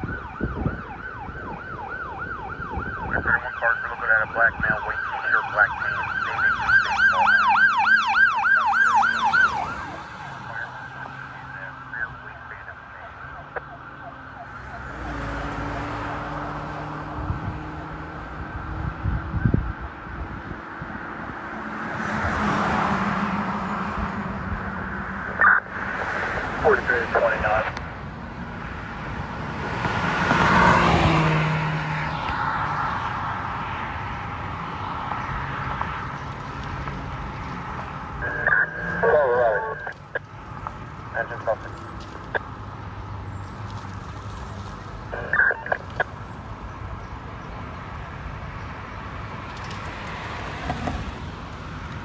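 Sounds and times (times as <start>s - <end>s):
warbling police siren: 0.0s - 16.8s, 38.1s - 40.2s, 45.1s - 46.1s
road traffic passing: 0.0s - 52.0s.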